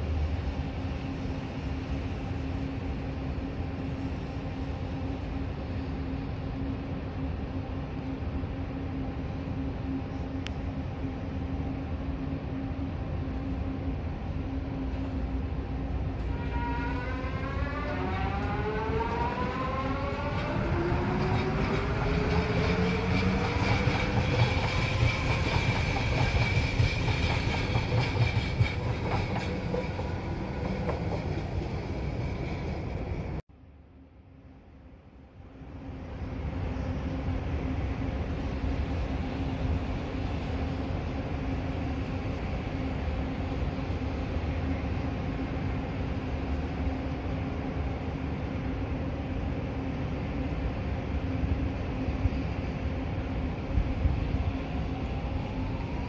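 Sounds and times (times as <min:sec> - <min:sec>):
train rumble: 0:00.0 - 0:33.5, 0:34.3 - 0:56.0.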